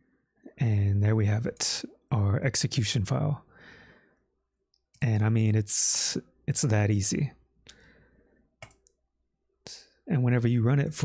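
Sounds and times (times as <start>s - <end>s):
computer mouse clicks: 8.6s - 9.0s.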